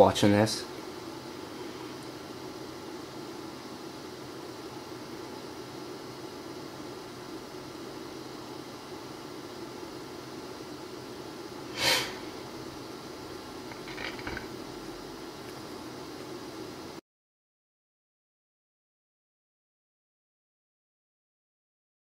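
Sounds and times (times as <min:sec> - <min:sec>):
low room hum and hiss: 0:00.0 - 0:17.0
breath noise close to microphone: 0:11.7 - 0:12.3.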